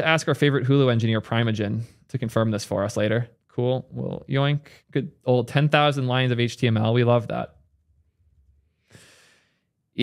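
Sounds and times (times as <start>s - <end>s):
short breath: 8.7s - 9.8s.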